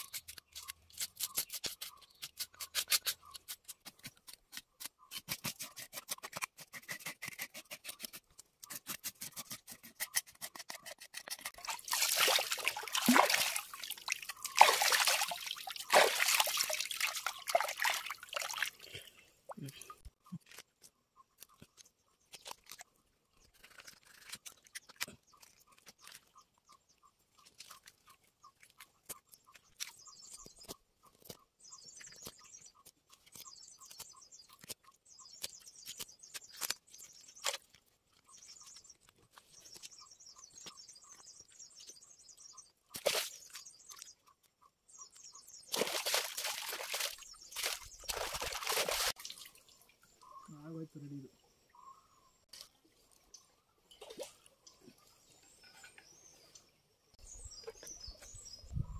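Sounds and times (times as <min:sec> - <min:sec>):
knife cutting and scraping fish: 0:00.0 - 0:11.9, 0:20.0 - 0:26.6, 0:27.3 - 0:40.0
water splashing: 0:11.6 - 0:18.9, 0:45.7 - 0:49.9.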